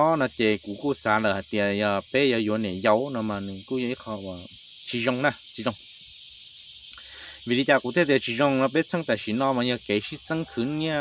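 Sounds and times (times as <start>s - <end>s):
man talking: 0.0s - 5.8s, 7.0s - 11.0s
crickets chirring: 0.0s - 11.0s.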